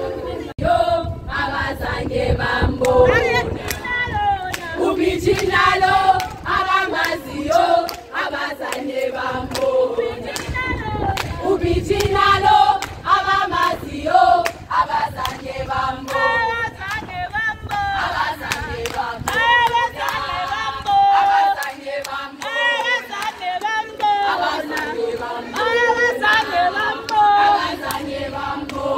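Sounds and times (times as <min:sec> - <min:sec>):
women singing and chanting: 0:00.0 - 0:28.9
hands clapping: 0:03.6 - 0:05.6, 0:07.0 - 0:08.9, 0:09.5 - 0:12.2, 0:12.8 - 0:13.0, 0:18.4 - 0:28.8.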